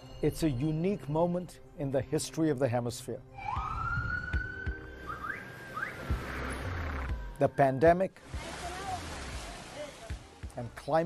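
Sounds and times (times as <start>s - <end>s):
emergency siren wailing: 3.3s - 7.4s
short rising siren chirps: 3.4s - 7.4s.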